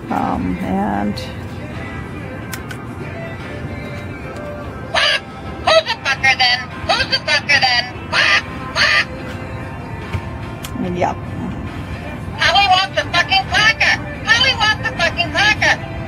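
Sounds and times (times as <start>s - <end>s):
toy parrot voice squawking: 5.0s - 5.3s, 7.5s - 9.1s.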